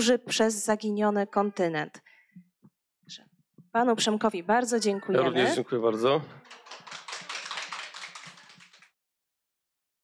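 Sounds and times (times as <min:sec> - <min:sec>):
audience applause: 0:06.4 - 0:08.9.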